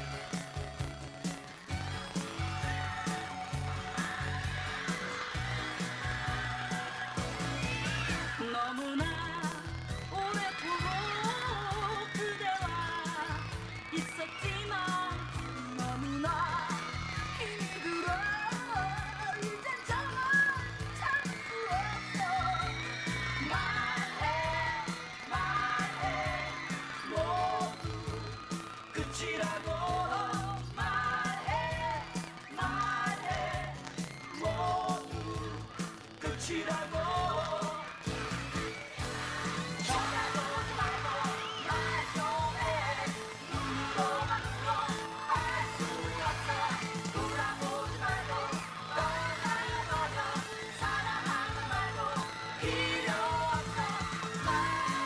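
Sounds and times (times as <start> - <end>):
pop song with dance beat: 0.0 - 55.0
person singing: 1.7 - 55.0.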